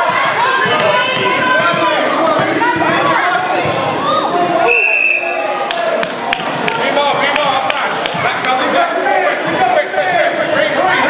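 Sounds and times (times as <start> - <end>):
spectators chattering and shouting: 0.0 - 11.0.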